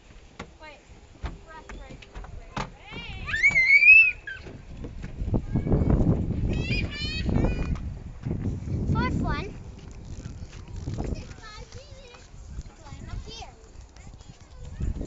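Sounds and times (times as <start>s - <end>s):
child squealing: 3.1s - 4.5s
short high cries: 3.2s - 4.4s
low rumbling scuffing noise: 4.4s - 15.0s.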